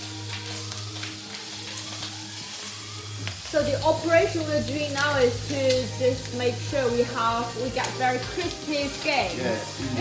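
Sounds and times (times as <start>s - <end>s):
chicken sizzling in oil: 0.0s - 10.0s.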